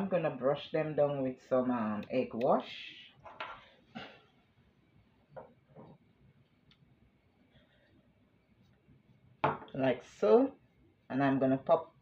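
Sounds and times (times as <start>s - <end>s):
faint knocks and rustles: 5.3s - 6.6s.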